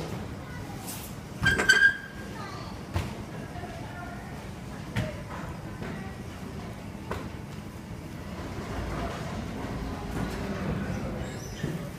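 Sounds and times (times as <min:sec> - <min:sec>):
workshop background rumble: 0:00.0 - 0:11.9.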